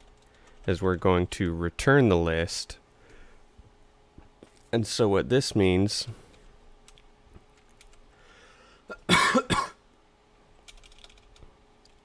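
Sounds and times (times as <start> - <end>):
person coughing: 8.9 - 9.8.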